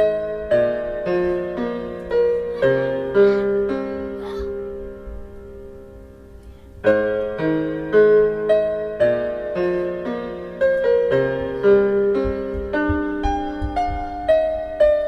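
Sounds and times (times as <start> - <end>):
piano melody: 0.0 - 15.0.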